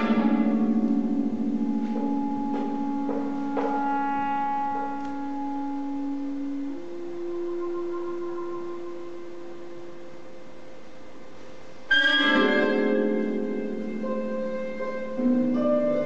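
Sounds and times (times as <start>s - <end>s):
loud plucked chord: 0.0s - 10.5s, 11.9s - 16.0s
chamber trio long held notes: 0.0s - 16.0s.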